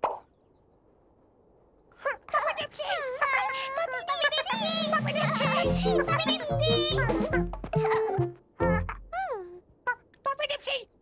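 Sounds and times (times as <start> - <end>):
person speaking: 2.1 - 10.6.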